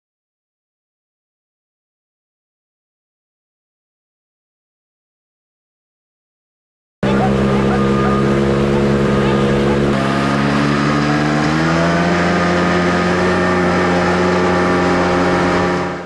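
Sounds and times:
vehicle engine running: 7.0s - 16.0s.

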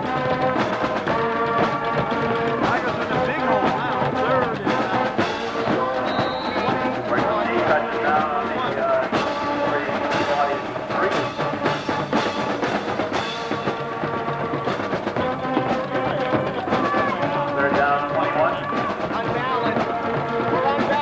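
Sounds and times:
band music with drums and brass: 0.0s - 21.0s.

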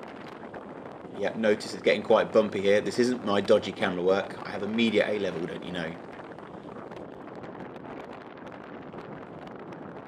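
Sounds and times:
bicycle rattling over bumpy road: 0.0s - 10.0s
wind rushing on microphone: 0.0s - 10.0s.

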